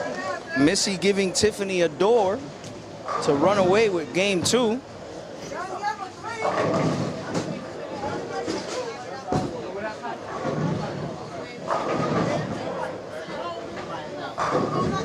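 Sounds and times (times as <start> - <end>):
people talking indistinctly: 0.0 - 15.0.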